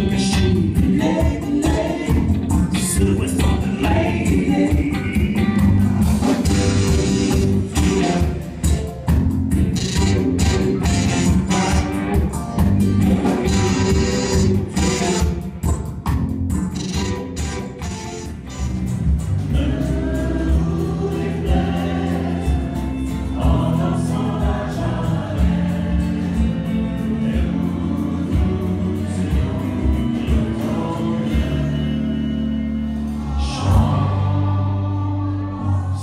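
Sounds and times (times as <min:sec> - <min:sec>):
people singing: 0:00.0 - 0:08.8, 0:13.0 - 0:15.4, 0:19.4 - 0:36.0
bass guitar: 0:00.0 - 0:36.0
drums: 0:00.0 - 0:36.0
guitars: 0:00.0 - 0:36.0.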